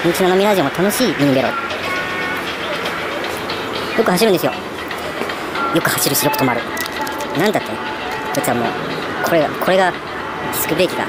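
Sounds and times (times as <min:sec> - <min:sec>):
road traffic rushing: 0:00.0 - 0:11.0.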